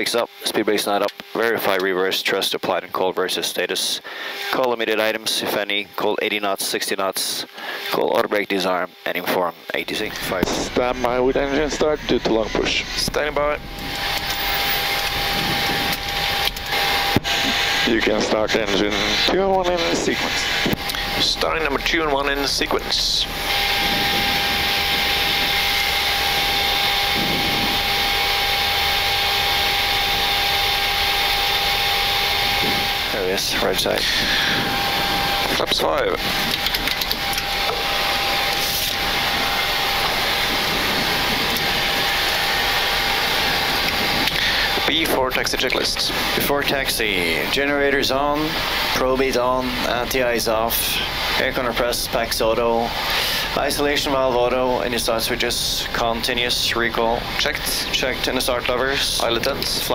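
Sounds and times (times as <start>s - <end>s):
jet engines idling: 0.0s - 59.9s
thin steady whine: 0.0s - 59.9s
rushing air noise: 10.0s - 59.9s.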